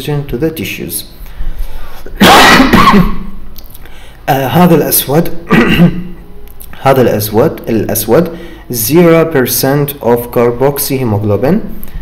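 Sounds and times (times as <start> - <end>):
man sneezing: 2.0 - 3.3, 5.5 - 6.1.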